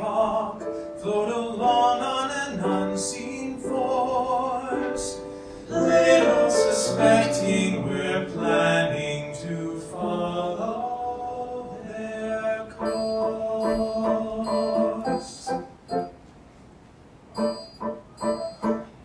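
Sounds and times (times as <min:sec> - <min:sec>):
two men singing: 0:00.0 - 0:15.6
piano: 0:00.0 - 0:16.5, 0:17.2 - 0:19.0
short piano chords: 0:12.7 - 0:16.2, 0:17.4 - 0:19.0.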